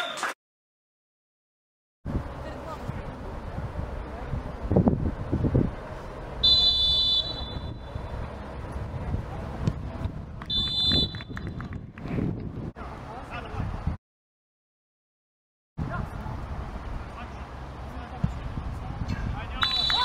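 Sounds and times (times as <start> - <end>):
referee's whistle blasts: 6.4 - 7.8, 10.5 - 11.3, 19.6 - 20.0
voices: 15.8 - 20.0.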